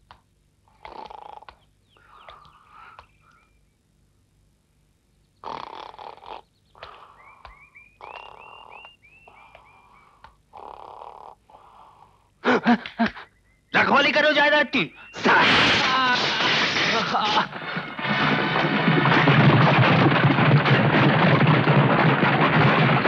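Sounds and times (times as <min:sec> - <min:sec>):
rough noisy animal calls: 0:05.4 - 0:12.2.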